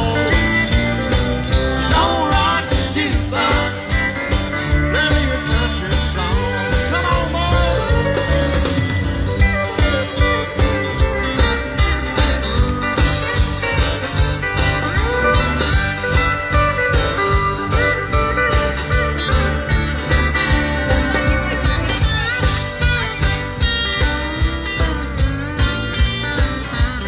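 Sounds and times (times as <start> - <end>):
bass: 0.0 - 27.0
guitar lead with bent notes: 0.0 - 27.0
steady drum beat: 0.0 - 27.0.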